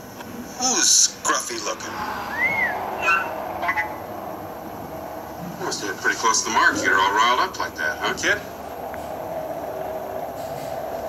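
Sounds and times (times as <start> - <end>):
mechanical background hum: 0.0 - 11.0.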